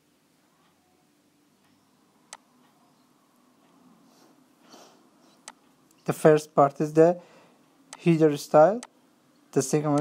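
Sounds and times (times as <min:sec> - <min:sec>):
soft breath at microphone: 0:07.2 - 0:07.6.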